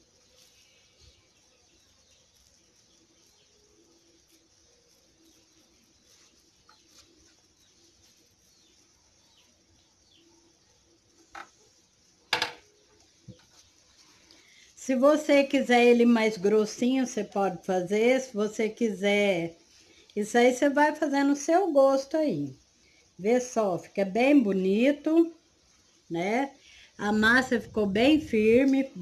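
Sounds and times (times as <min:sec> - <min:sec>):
faint bird chirps: 0:00.1 - 0:15.7.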